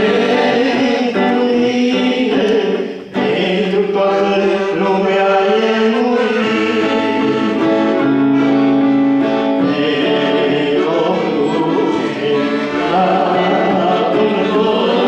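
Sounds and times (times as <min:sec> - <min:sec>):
electric guitar: 0:00.0 - 0:15.0
gospel singing: 0:00.0 - 0:15.0.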